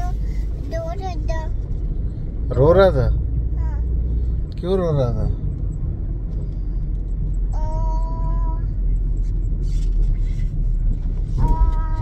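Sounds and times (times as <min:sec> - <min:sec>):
small child speaking: 0:00.0 - 0:01.6, 0:03.6 - 0:03.9, 0:07.6 - 0:08.7, 0:11.4 - 0:12.0
low rumble inside a car: 0:00.0 - 0:12.0.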